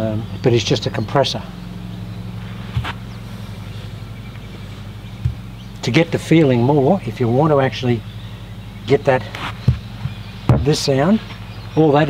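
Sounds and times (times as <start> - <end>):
low mechanical hum: 0.0 - 12.0
soft low thumps: 1.4 - 12.0.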